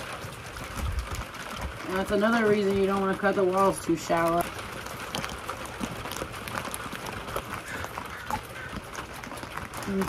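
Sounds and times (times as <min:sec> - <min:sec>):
plastic crinkling and tapping: 0:00.0 - 0:10.0.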